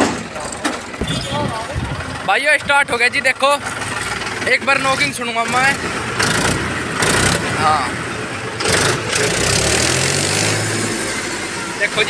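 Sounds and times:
tractor diesel engine revving: 0.0 - 12.0.

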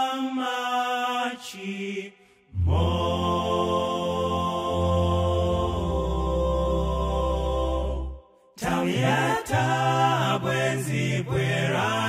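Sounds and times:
male vocal group singing chords: 0.0 - 12.0.

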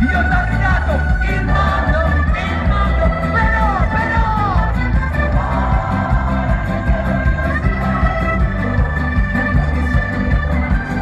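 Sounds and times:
live rock band instrumental: 0.0 - 11.0.

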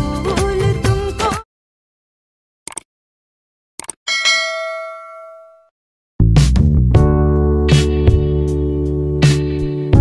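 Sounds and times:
bell-like notification ding: 4.1 - 5.7.

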